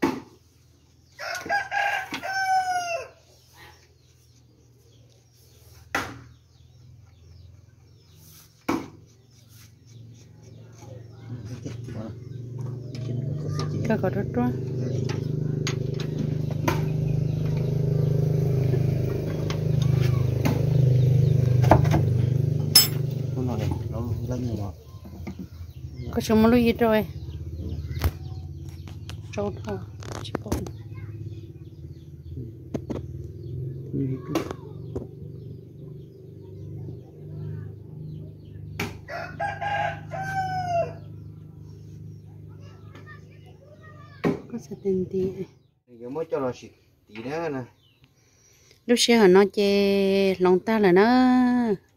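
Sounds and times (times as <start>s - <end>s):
rooster crowing: 1.2s - 3.4s, 39.1s - 41.2s
diesel engine running: 10.0s - 38.8s
metallic clinks of tools: 22.7s - 23.0s.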